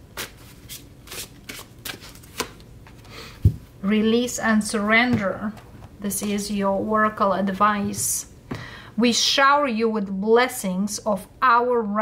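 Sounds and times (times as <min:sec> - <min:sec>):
cards being shuffled: 0:00.2 - 0:03.1.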